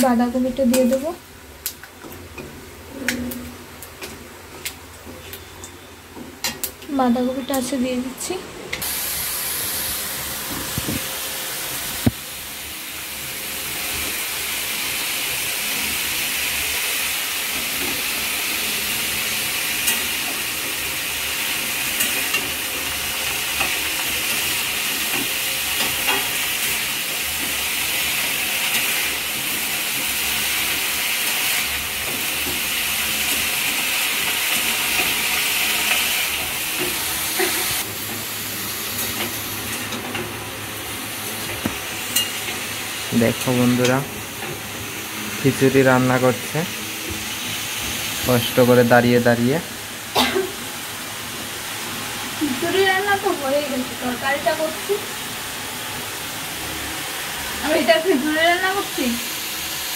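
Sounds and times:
cabbage sizzling in hot oil: 6.4 - 59.9.

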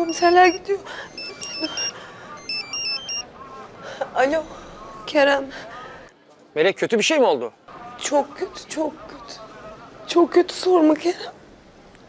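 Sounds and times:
mobile phone ringtone beeps: 0.0 - 3.3.

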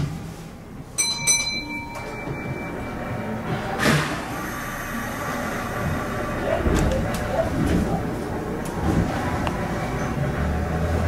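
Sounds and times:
bell-like chime: 1.0 - 3.7.

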